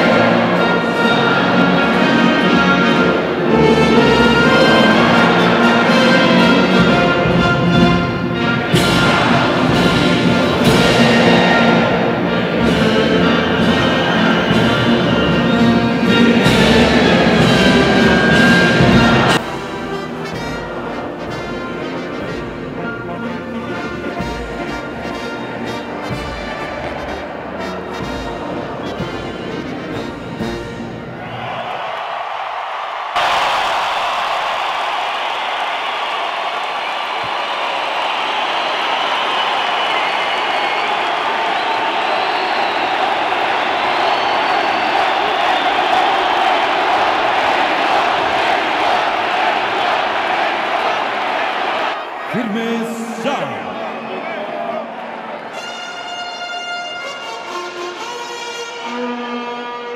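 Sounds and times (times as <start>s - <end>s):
military band playing: 0.0s - 31.3s, 52.3s - 54.0s, 55.4s - 59.7s
crowd cheering and applauding: 0.0s - 59.9s.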